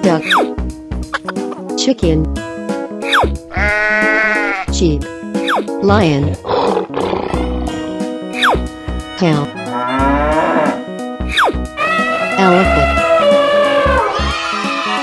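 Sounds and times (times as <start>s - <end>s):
cartoon background music: 0.0s - 15.0s
animal bleat: 3.5s - 4.7s, 9.6s - 10.8s, 11.8s - 14.1s
lion roaring: 6.4s - 7.5s, 9.7s - 10.8s
animal calls: 9.6s - 14.4s.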